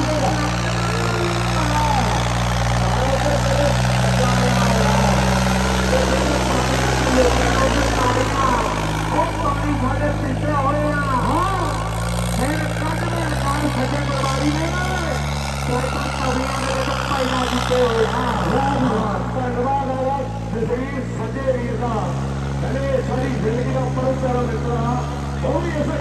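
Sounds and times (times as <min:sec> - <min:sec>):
crowd voices and shouts: 0:00.0 - 0:26.0
tractor diesel engine under load: 0:00.0 - 0:26.0.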